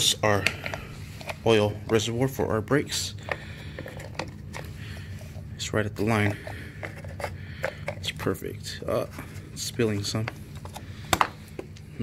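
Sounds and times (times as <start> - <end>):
plastic cap clicking and rubbing: 0.4 - 2.0, 3.2 - 4.7, 6.2 - 8.2.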